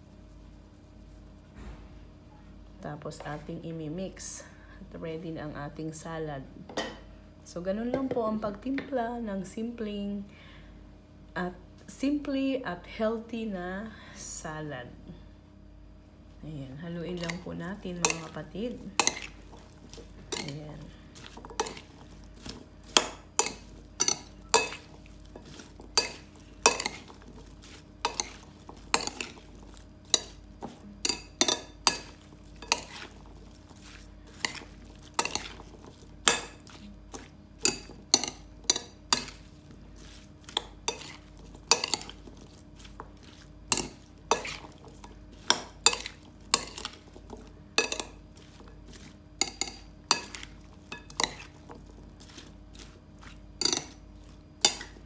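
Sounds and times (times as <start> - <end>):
rustle of wet salad pieces: 0.0 - 1.5, 17.1 - 55.0
metal spoon clinking on glass bowl: 23.0 - 27.1, 47.8 - 48.1, 53.6 - 54.0.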